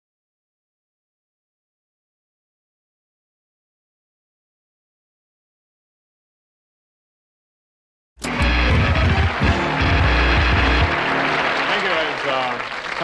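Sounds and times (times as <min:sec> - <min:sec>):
heavy bass music: 0:08.2 - 0:11.6
man speaking: 0:11.7 - 0:12.6.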